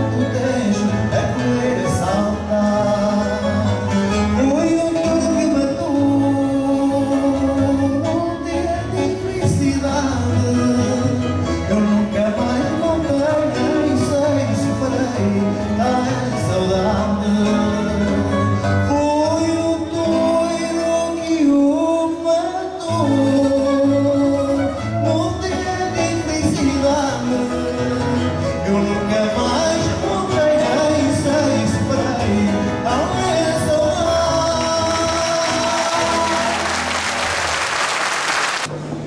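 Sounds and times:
plucked guitar: 0.0s - 21.6s, 22.8s - 37.3s
man singing long held notes: 0.0s - 37.0s
classical guitar accompaniment: 0.0s - 37.4s.

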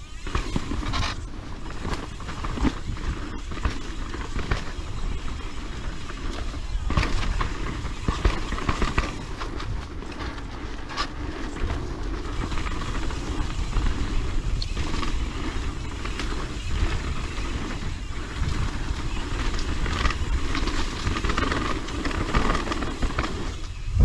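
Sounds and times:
bike chain and frame rattles: 0.0s - 24.0s
bike tyres crunching over dirt: 0.0s - 24.0s
wind rumble on microphone: 0.0s - 24.0s.

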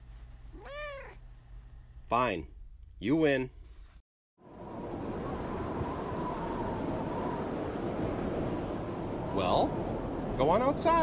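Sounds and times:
faint wind whistle: 4.4s - 11.0s
rushing wind: 4.4s - 11.0s.

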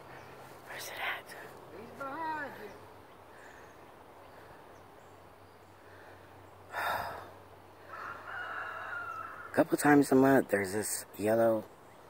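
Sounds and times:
distant bird call: 2.2s - 9.6s.

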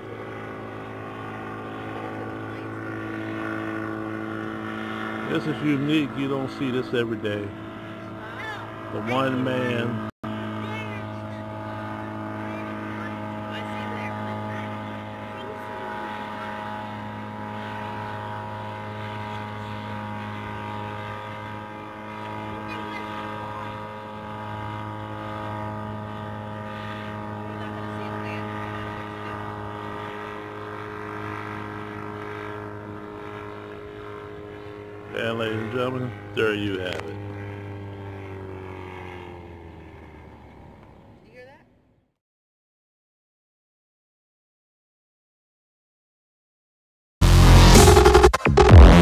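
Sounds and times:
gyrocopter engine droning: 0.0s - 42.1s, 47.2s - 49.0s.

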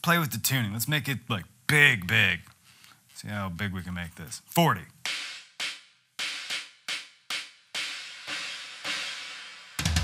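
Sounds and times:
electronic cymbal hits: 5.1s - 10.0s.

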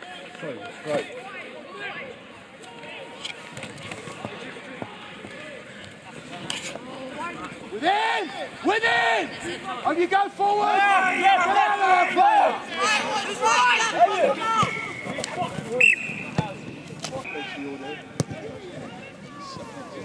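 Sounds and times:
faint field noise: 0.0s - 20.0s
people shouting: 10.2s - 15.2s.

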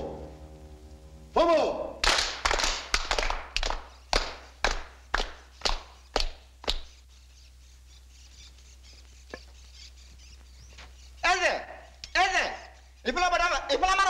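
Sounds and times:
sharp percussive strikes: 0.0s - 5.4s.

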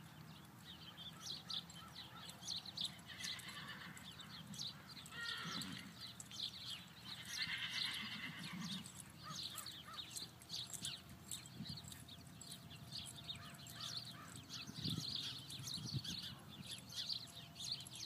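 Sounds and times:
soft hoofbeats on dirt: 0.0s - 18.0s
horse whinnying: 3.1s - 4.1s, 5.1s - 5.9s, 7.2s - 8.9s.

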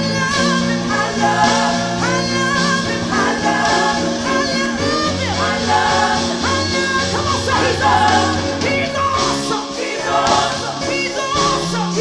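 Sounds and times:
group of singers singing: 0.0s - 12.0s
live band playing: 0.0s - 12.0s.

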